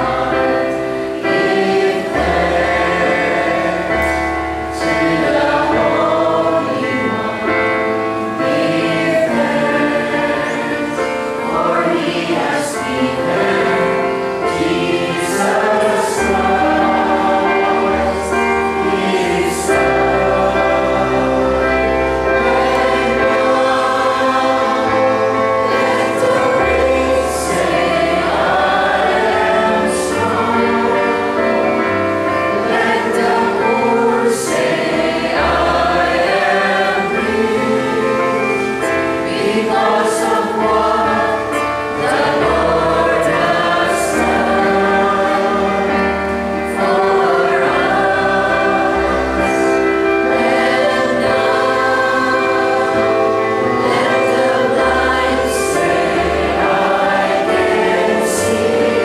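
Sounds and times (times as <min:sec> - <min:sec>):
congregation singing a hymn: 0:00.0 - 0:59.0
low sustained accompanying notes: 0:00.0 - 0:59.0.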